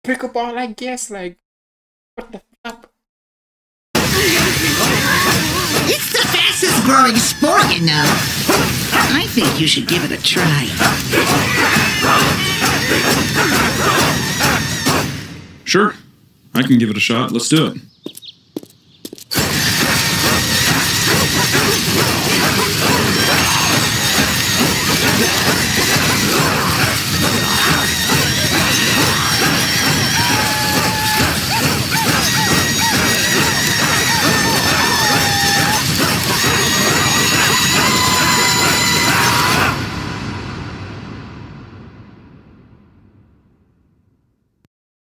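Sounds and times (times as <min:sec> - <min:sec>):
crashing and smashing effects: 0:04.0 - 0:15.4, 0:19.3 - 0:43.2
cartoon music: 0:19.4 - 0:39.8.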